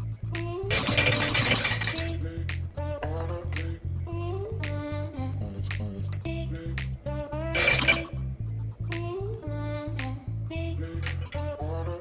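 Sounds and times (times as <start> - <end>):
background music with bass line: 0.0 - 12.0
utensil scraping a glass jar: 0.7 - 2.2, 7.6 - 8.2.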